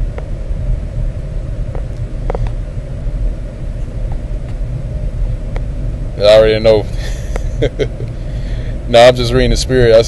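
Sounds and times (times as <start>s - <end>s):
faint hum: 0.0s - 10.0s
steady low rumble: 0.0s - 10.0s.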